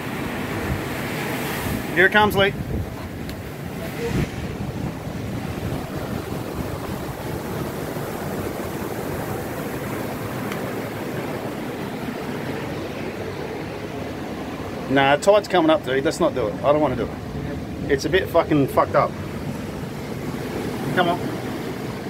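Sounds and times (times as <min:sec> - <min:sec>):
seawater rushing into cave: 0:00.0 - 0:22.0.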